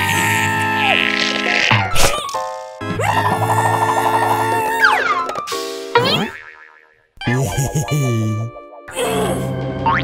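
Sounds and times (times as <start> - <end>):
cartoon boing: 6.0 - 7.0.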